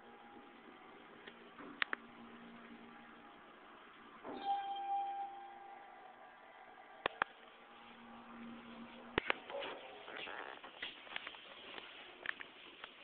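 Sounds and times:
elevator arrival chime: 4.3s - 6.2s.

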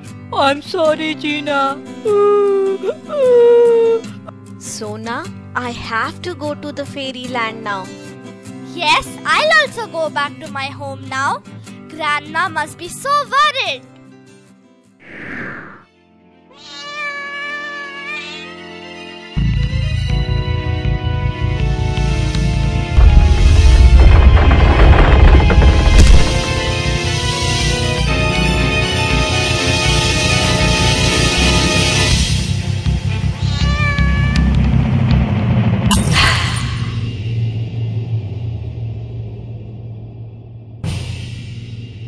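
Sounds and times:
background music: 0.0s - 15.0s, 15.8s - 37.3s
loud whoosh: 15.0s - 15.8s
animated creature high cry: 16.5s - 18.7s, 33.4s - 34.5s
cat meowing: 16.5s - 19.7s, 33.4s - 34.6s.

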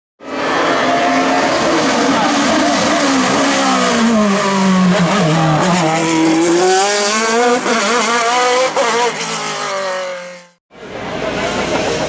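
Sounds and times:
race car engine at high revs: 0.2s - 12.0s.

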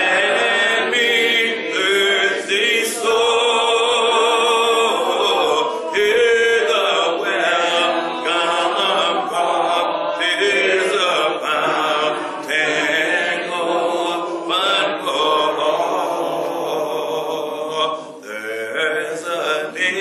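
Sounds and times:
voices singing a hymn: 0.0s - 20.0s.

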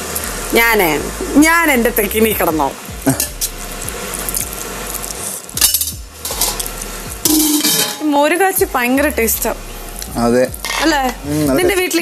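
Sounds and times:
cutlery clatter: 7.3s - 8.0s
cutlery clinking on plates: 7.3s - 8.0s.

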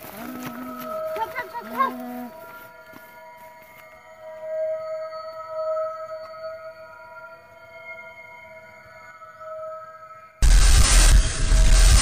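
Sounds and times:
ambient music drone: 0.0s - 12.0s.

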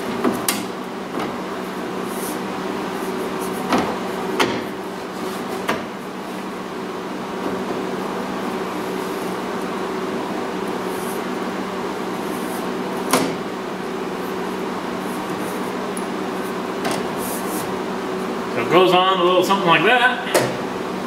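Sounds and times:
steady hum: 0.0s - 21.0s.

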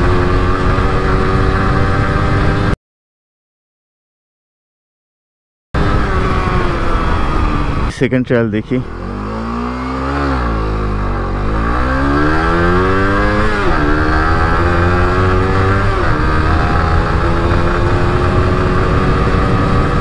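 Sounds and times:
motorcycle engine accelerating: 0.0s - 2.8s, 5.8s - 20.0s.

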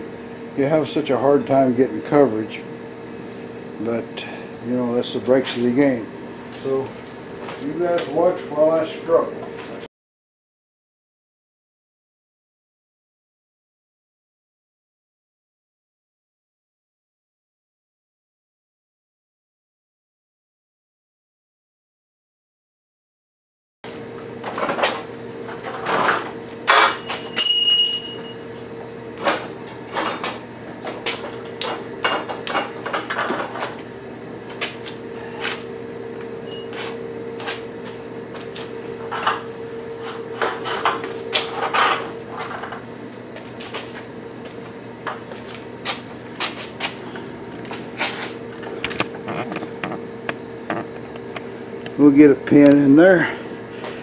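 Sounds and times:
steady hum: 24.1s - 54.0s
ringing metal clang: 26.7s - 28.5s.

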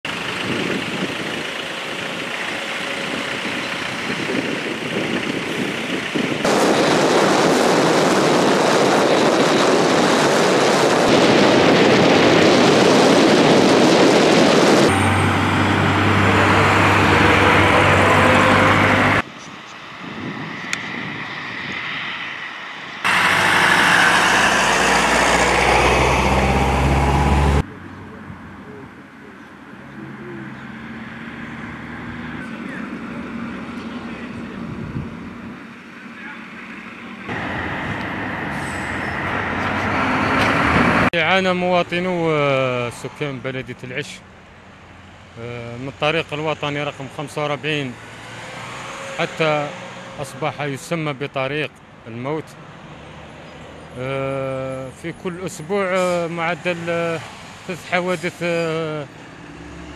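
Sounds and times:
highway traffic noise: 0.0s - 59.9s
lorry engine hum: 0.0s - 59.9s.

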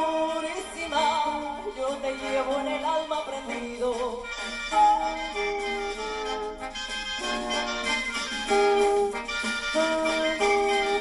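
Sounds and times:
brass melody: 0.0s - 11.0s.

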